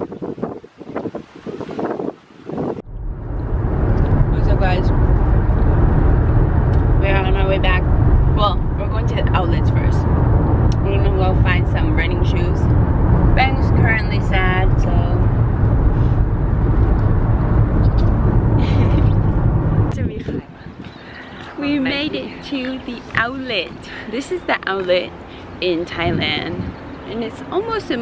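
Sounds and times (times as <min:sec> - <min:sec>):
car cabin road and engine rumble: 0:02.8 - 0:28.0
voices: 0:06.7 - 0:10.1, 0:10.7 - 0:12.7, 0:13.3 - 0:15.3, 0:19.9 - 0:28.0.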